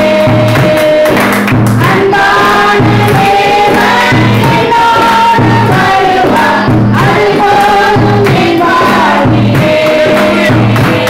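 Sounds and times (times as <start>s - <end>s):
accompaniment with low beat: 0.0s - 11.0s
women singing gospel song: 0.0s - 11.0s.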